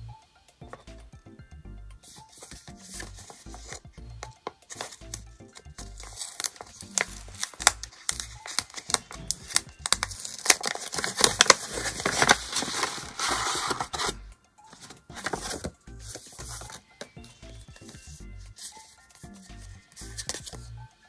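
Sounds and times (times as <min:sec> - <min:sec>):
soft background music: 0:00.0 - 0:21.0
paper crinkling and rustling: 0:02.1 - 0:03.8, 0:04.4 - 0:20.7.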